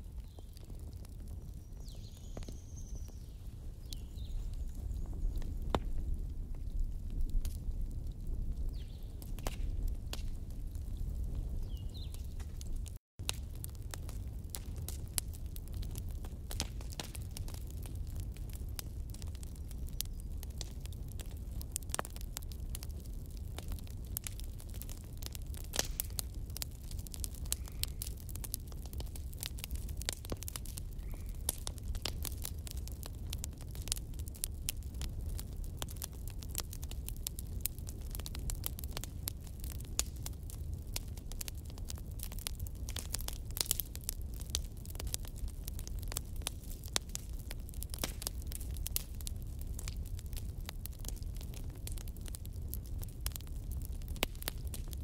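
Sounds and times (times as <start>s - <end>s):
low rumble of flames: 0.0s - 55.0s
wood fire crackling: 0.0s - 55.0s.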